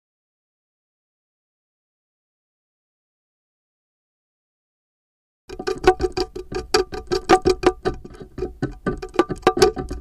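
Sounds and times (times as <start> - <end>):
fruit rind clicking on stone: 5.5 - 10.0.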